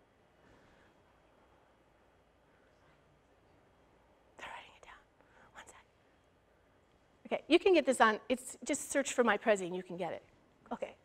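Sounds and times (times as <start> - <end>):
person whispering: 4.4 - 5.9.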